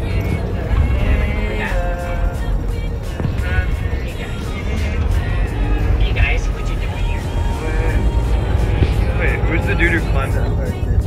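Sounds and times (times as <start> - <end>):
bus engine rumble: 0.0 - 11.0
music: 0.0 - 11.0
voices: 0.0 - 11.0.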